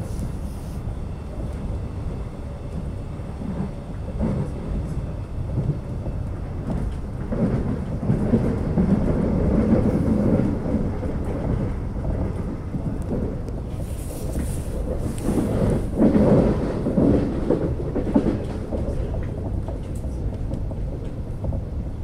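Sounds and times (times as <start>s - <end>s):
train wheels on rail rumble: 0.0s - 22.0s.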